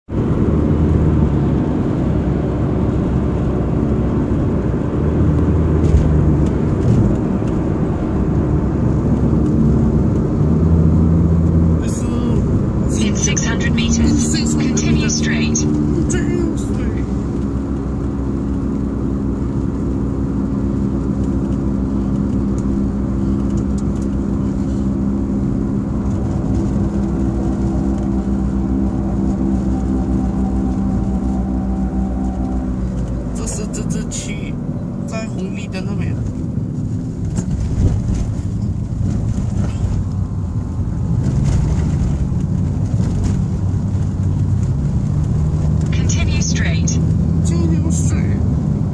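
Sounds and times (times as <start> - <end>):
car engine and road noise: 0.0 - 48.9
person talking: 11.8 - 17.1, 46.0 - 48.5.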